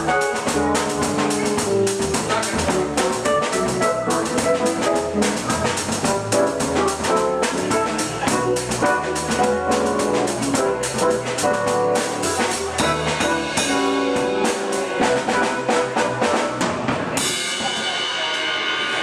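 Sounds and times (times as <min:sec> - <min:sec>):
bass notes: 0:00.0 - 0:17.2
keyboard: 0:00.0 - 0:17.5
drum kit: 0:00.0 - 0:19.0.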